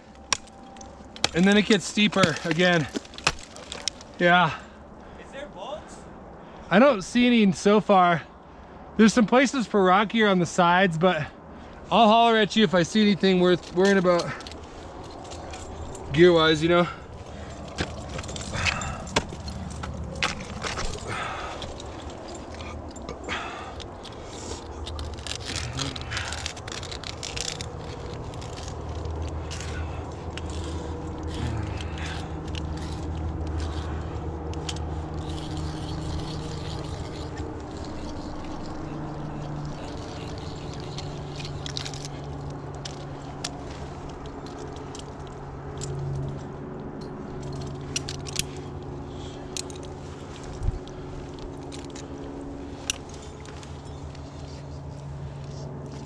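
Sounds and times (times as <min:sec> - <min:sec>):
steady low hum: 0:10.6 - 0:56.0.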